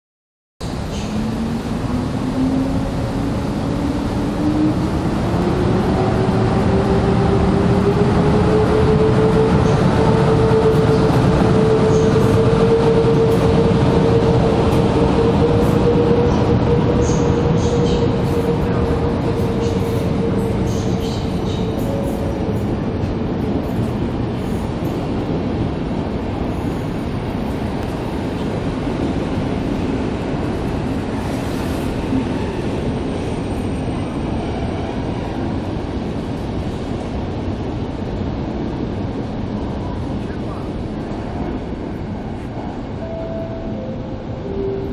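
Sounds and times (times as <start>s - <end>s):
train wheels rumbling on track: 0.6s - 44.9s.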